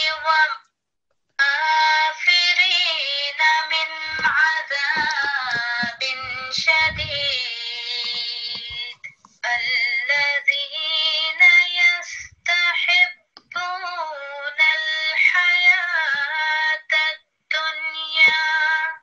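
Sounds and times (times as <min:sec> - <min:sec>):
woman chanting recitation: 0:00.0 - 0:00.6, 0:01.4 - 0:19.0.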